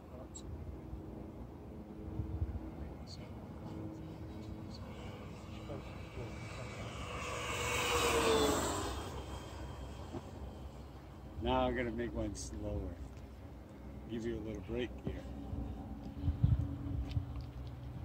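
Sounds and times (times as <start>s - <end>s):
model airplane fly-by: 0.1s - 18.0s.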